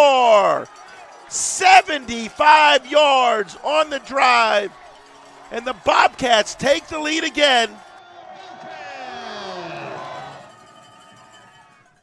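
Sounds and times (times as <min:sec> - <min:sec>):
crowd cheering and shouting: 0:00.0 - 0:12.0
long drawn-out shouts: 0:00.0 - 0:12.0.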